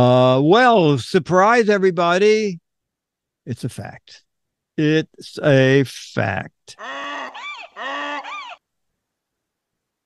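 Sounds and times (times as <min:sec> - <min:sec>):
honking pitched calls: 0:06.8 - 0:08.6.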